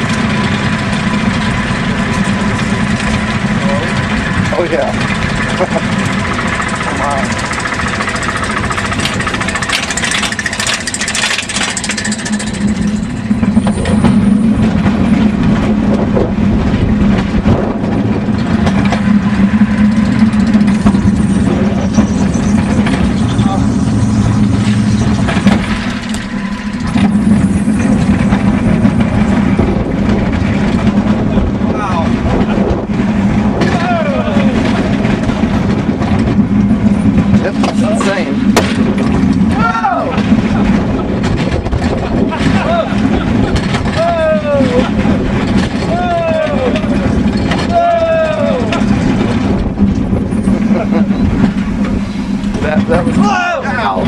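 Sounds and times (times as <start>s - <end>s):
coaster car clattering on chain lift: 0.0s - 23.6s, 24.2s - 54.0s
wheels rumbling on rails: 0.0s - 54.0s.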